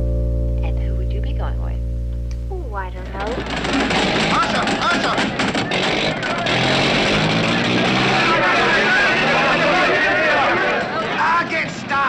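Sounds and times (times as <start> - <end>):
music: 0.0 - 4.5
car engine running: 0.0 - 11.4
crowd shouting: 3.7 - 12.0.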